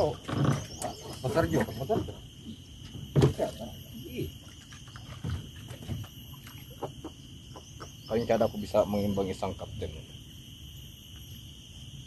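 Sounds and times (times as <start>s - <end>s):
high-pitched insect drone: 0.0s - 12.0s.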